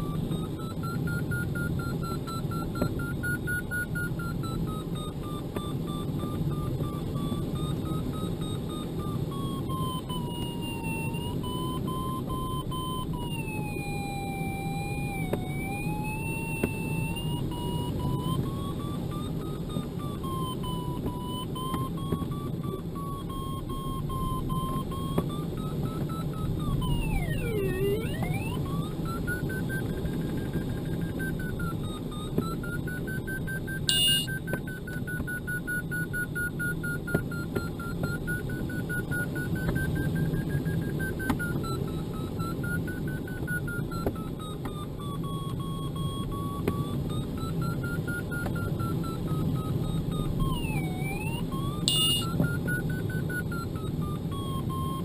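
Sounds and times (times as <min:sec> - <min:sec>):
short electronic beep: 0:00.0 - 0:39.2, 0:45.0 - 0:55.0
variometer tone: 0:00.0 - 0:55.0.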